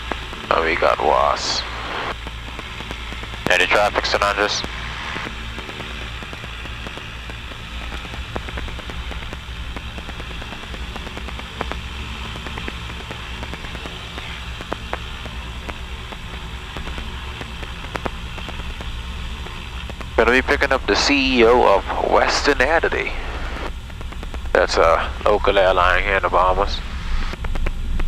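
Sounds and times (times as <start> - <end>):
aircraft piston engines droning: 0.0 - 28.0.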